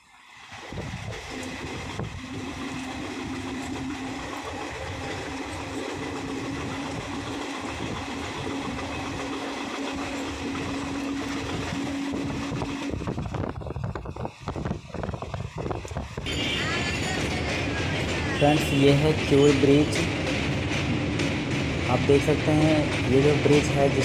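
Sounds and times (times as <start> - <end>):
train wheels rolling on rails: 0.2 - 24.0.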